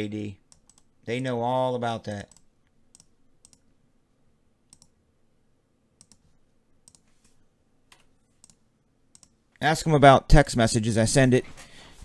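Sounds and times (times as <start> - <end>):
faint computer mouse clicks: 4.7 - 4.9, 6.0 - 7.1, 7.9 - 9.4.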